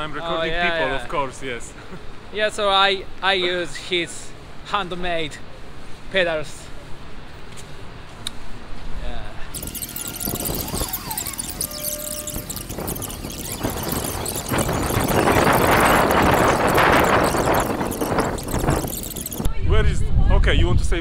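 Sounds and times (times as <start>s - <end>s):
sped-up squeaky voices: 9.6s - 19.5s.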